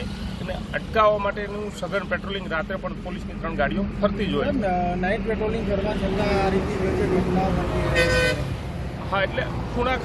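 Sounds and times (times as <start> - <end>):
street background: 0.0 - 10.0
voices: 0.0 - 10.0
vehicle horn toot: 7.9 - 8.5.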